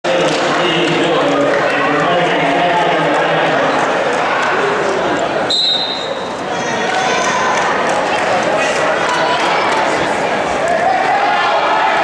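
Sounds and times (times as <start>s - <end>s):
voices in a gym: 0.0s - 12.0s
referee's whistle: 5.5s - 6.3s.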